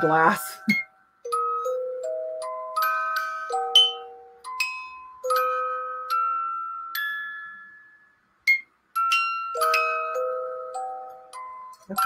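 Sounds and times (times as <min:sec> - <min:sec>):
music box playing: 0:00.0 - 0:12.0.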